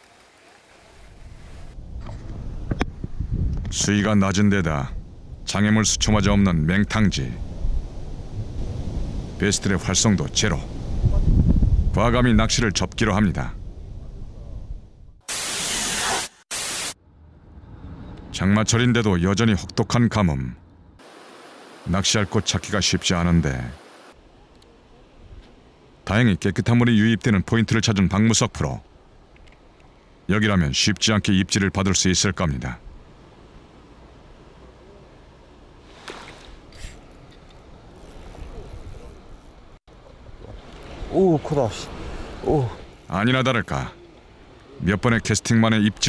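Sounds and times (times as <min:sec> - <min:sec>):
hissing static bursts: 0:15.2 - 0:17.0, 0:21.0 - 0:24.2.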